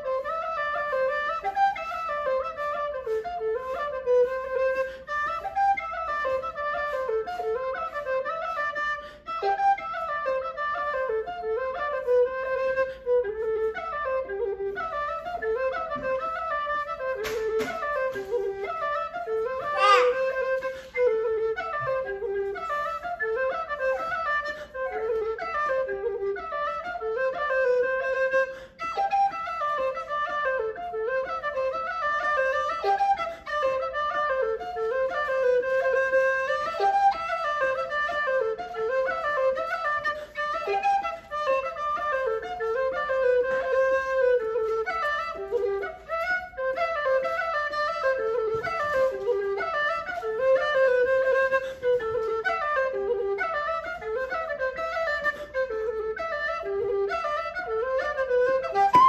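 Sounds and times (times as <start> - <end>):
low whistle playing jig: 0.0 - 59.0.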